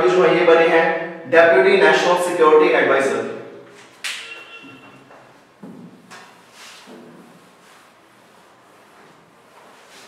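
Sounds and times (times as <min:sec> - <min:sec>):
sharp slap: 0:04.0 - 0:04.3.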